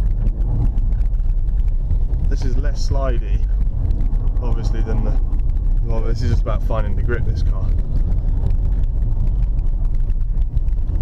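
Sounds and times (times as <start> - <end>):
engine and tyres rumbling on ice: 0.0 - 11.0
fast crackle of ticks: 0.0 - 11.0.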